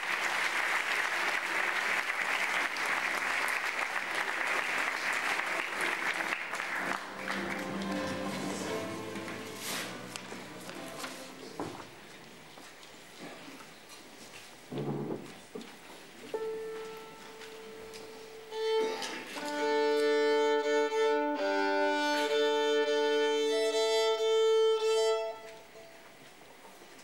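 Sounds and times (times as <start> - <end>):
violin playing: 6.9 - 10.5, 16.4 - 25.9.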